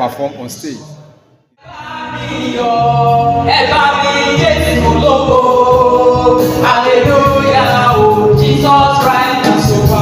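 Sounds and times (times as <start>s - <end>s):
man and woman singing gospel: 1.6s - 10.0s.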